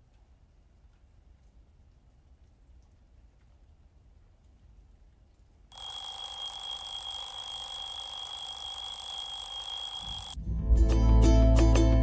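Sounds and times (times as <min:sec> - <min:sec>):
timer alarm ringing: 0:05.7 - 0:10.4.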